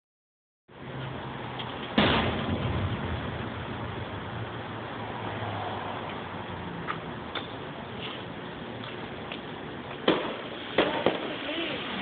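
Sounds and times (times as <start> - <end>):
background rumble: 1.9 - 8.8
firework shell bang: 2.0 - 3.4, 10.0 - 11.4.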